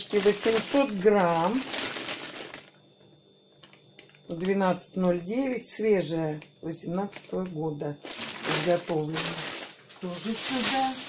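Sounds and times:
plastic packaging crinkling: 0:00.0 - 0:02.8, 0:03.5 - 0:04.6, 0:07.1 - 0:11.0.

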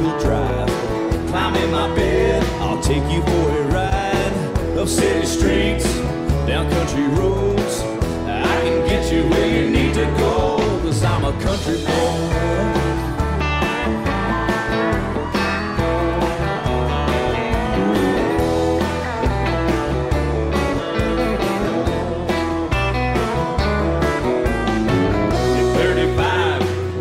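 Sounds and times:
bass: 0:00.0 - 0:27.0
country guitar lead: 0:00.0 - 0:27.0.

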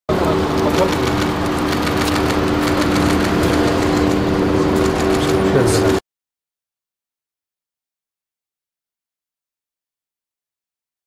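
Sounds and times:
car engine idling: 0:00.1 - 0:06.0
people's voices: 0:00.1 - 0:06.0
sharp clicks: 0:00.6 - 0:04.2.

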